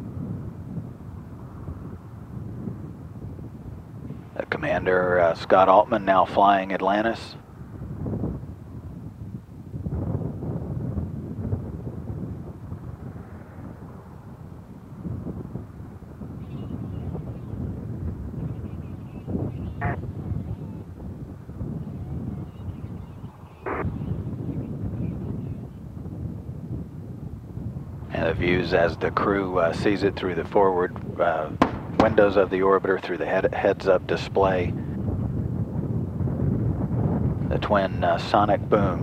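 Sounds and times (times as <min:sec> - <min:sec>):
wind rumbling on microphone: 0:00.0 - 0:39.0.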